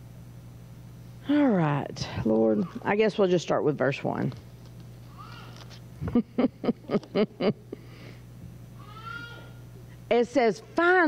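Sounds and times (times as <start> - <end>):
steady low hum: 0.0 - 11.0
woman laughing into a microphone: 6.0 - 7.8.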